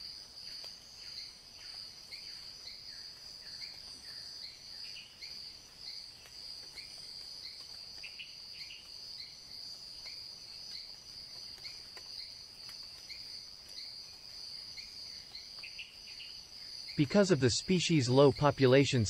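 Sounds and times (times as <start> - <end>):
cricket-like insect chorus: 0.0 - 19.0
low insect chirp: 0.0 - 19.0.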